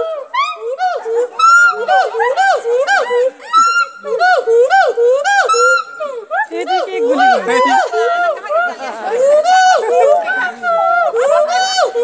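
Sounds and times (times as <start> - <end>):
gibbon whooping calls: 0.0 - 12.0.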